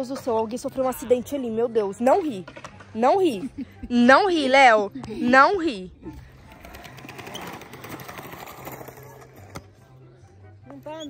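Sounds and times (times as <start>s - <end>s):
skateboard wheels rolling on concrete: 6.2s - 11.0s.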